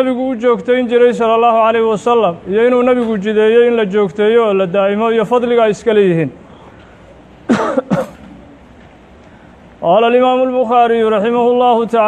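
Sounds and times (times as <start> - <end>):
man coughing: 7.5 - 8.4.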